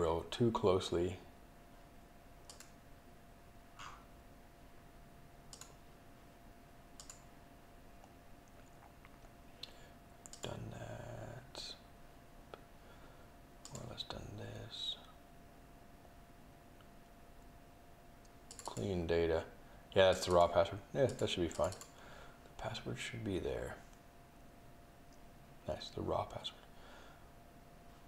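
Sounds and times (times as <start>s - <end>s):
faint steady hum: 0.0s - 28.0s
mouse and keyboard clicks: 7.0s - 7.2s.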